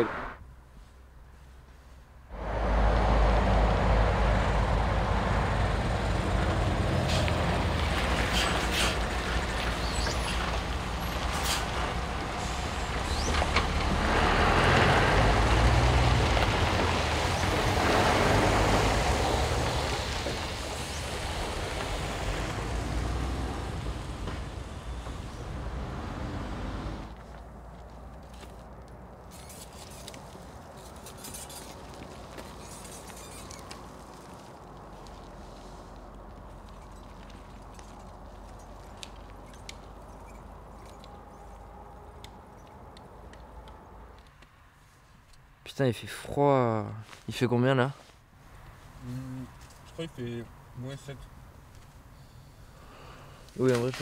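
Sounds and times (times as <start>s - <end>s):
vehicles passing by: 0.0s - 54.0s.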